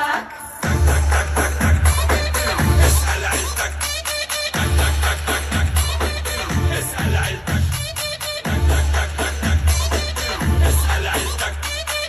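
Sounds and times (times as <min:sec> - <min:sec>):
live pop music over loudspeakers: 0:00.0 - 0:12.0
heavy bass beat: 0:00.6 - 0:12.0.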